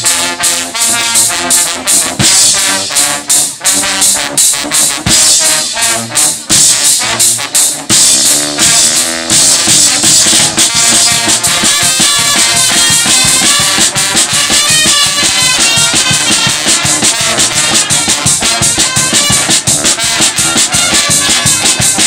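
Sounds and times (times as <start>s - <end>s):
brass band playing: 0.0s - 22.0s
snare drum and cymbal beat: 0.0s - 22.0s.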